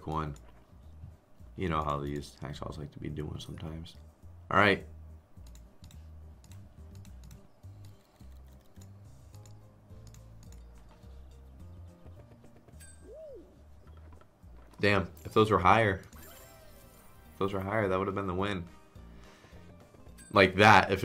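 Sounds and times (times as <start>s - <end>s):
slot game background music: 0.0s - 21.0s
keyboard typing: 5.4s - 10.9s.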